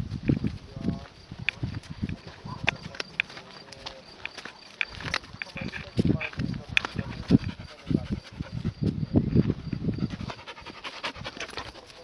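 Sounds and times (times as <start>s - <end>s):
dog panting: 5.7s - 12.0s.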